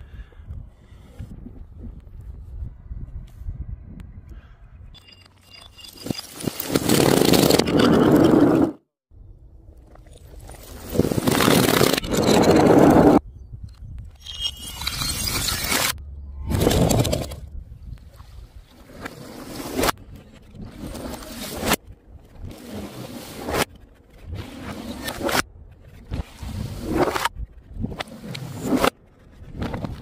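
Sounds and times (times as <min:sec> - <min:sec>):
glass bottles sliding down chute: 0:05.0 - 0:08.7.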